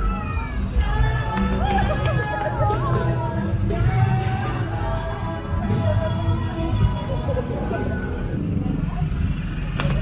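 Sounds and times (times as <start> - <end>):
background music: 0.0 - 9.1
faint voices: 0.0 - 10.0
street traffic rumble: 0.0 - 10.0
motorbikes passing: 0.8 - 10.0.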